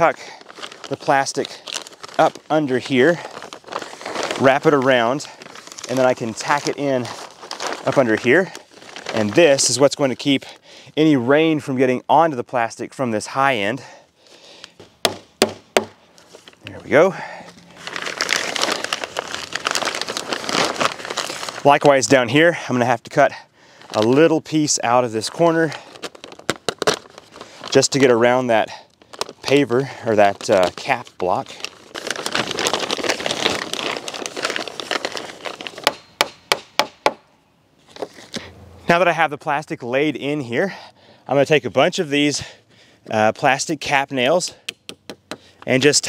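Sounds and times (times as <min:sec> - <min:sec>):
plastic sheeting crinkling: 0:00.0 - 0:10.6, 0:16.1 - 0:22.2, 0:23.7 - 0:36.1.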